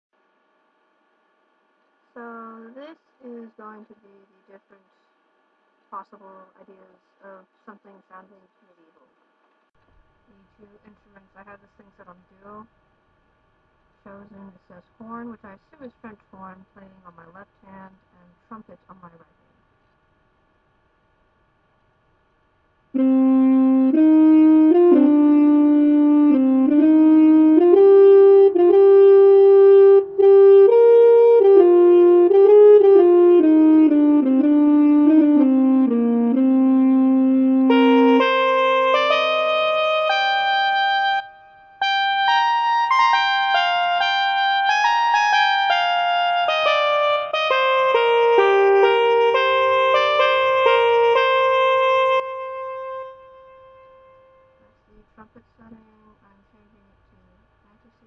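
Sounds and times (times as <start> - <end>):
synthesizer slow melody: 23.0 - 54.6.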